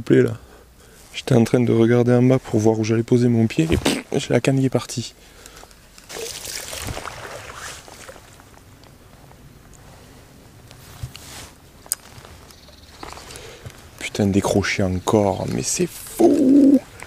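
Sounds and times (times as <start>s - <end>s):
fishing line rushing: 6.1s - 8.3s.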